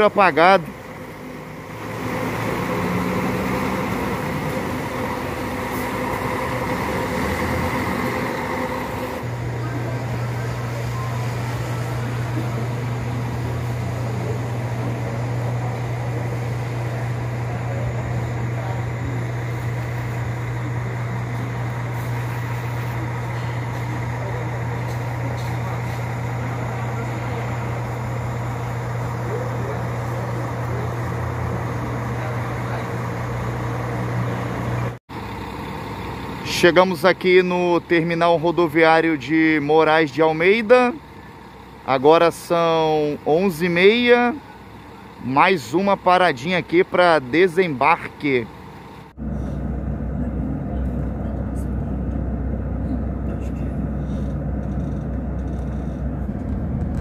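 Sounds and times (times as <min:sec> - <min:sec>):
bus engine pulling away: 0:00.0 - 0:57.0
idling bus engine drone: 0:00.0 - 0:57.0.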